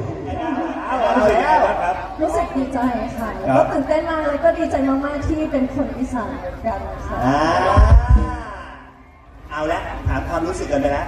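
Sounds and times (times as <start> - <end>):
low thumps: 7.7 - 8.6.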